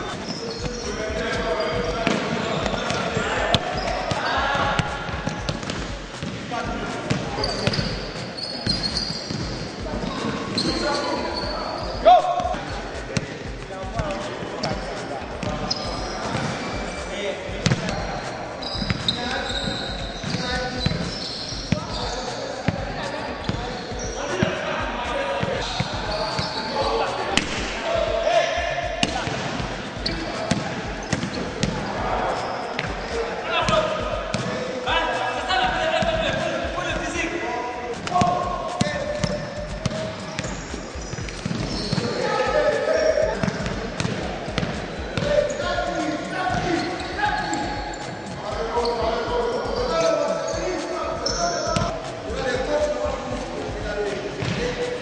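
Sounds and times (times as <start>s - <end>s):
basketballs bouncing on wooden floor: 0.0s - 17.0s, 17.6s - 18.1s, 18.7s - 24.5s, 28.8s - 31.8s, 33.7s - 34.6s, 38.1s - 42.2s, 43.0s - 45.3s, 46.5s - 48.0s, 51.2s - 52.0s, 54.4s - 54.6s.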